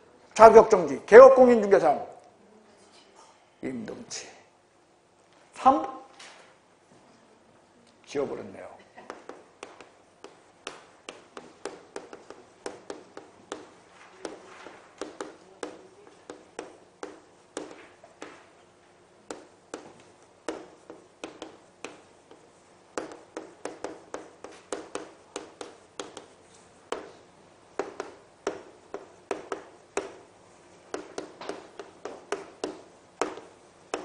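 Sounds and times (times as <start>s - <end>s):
chalk writing on chalkboard: 9.1s - 18.5s, 19.2s - 34.0s.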